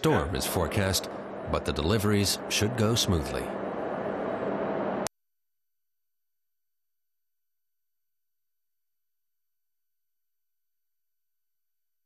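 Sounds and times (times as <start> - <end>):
faint hum: 0.0 - 5.1
rushing sea ambience: 0.0 - 5.1
thin high steady tone: 0.0 - 5.1.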